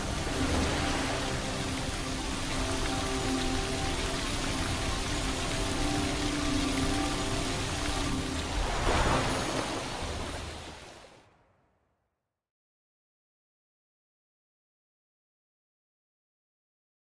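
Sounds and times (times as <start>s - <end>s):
low sustained musical tones: 0.0s - 11.0s
rain-like hiss: 0.0s - 11.2s.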